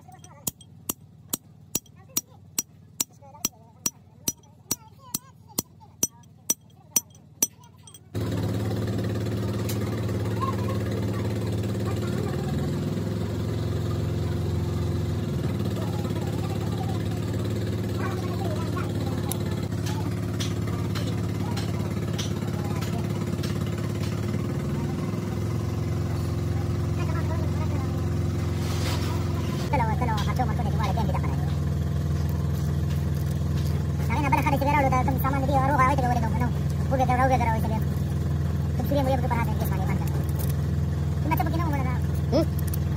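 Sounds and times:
engine idling: 0:00.0 - 0:42.9.

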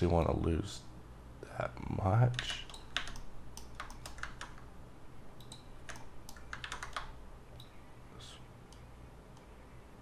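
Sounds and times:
low steady hum: 0:00.0 - 0:10.0
mouse and keyboard clicking: 0:02.3 - 0:04.6, 0:05.4 - 0:07.8
scroll wheel ticks: 0:05.4 - 0:07.8.

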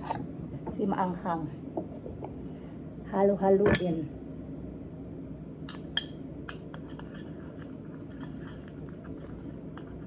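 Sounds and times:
low room hum: 0:00.0 - 0:10.0
spoon clinking in ceramic bowl: 0:05.7 - 0:06.6.

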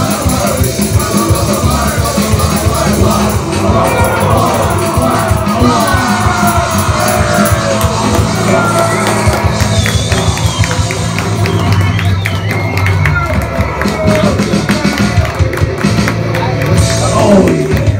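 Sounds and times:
crowd shouting: 0:00.0 - 0:15.6
bass guitar: 0:00.0 - 0:17.9
drums: 0:00.0 - 0:17.9.

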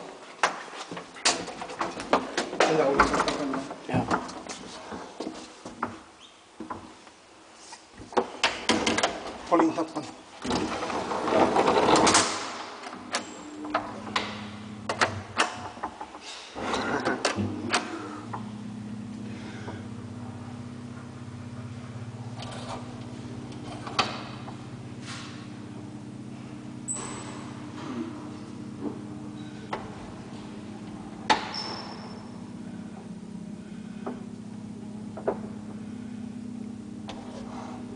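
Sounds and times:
low elevator machine hum: 0:00.0 - 0:37.9
elevator gate being shut: 0:10.4 - 0:18.8, 0:26.8 - 0:32.5.

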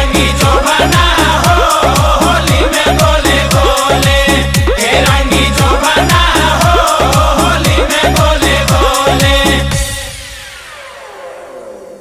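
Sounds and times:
noisy sweep falling in pitch: 0:09.7 - 0:12.0.

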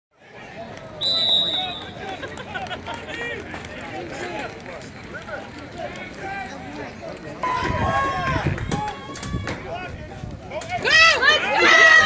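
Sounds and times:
many voices: 0:00.2 - 0:12.0
referee's whistle blast: 0:01.0 - 0:02.0.

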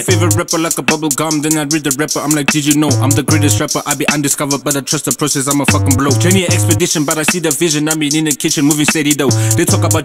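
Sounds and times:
deep bass notes: 0:00.0 - 0:01.1, 0:02.8 - 0:03.8, 0:05.7 - 0:07.0, 0:09.3 - 0:10.0
hi-hat ticks: 0:00.0 - 0:10.0
man rapping over a beat: 0:00.0 - 0:10.0.

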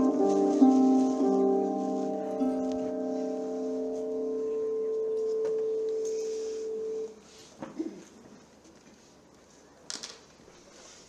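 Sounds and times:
steady pure musical tone: 0:00.0 - 0:07.2.

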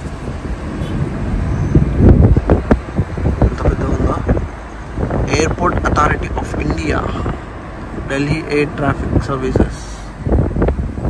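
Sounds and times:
car road and engine noise: 0:00.0 - 0:11.0
wind buffeting microphone: 0:00.0 - 0:11.0.

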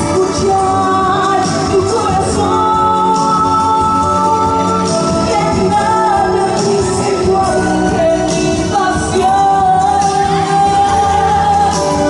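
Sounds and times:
accompanying music: 0:00.0 - 0:12.0
woman singing into microphone: 0:00.0 - 0:12.0.

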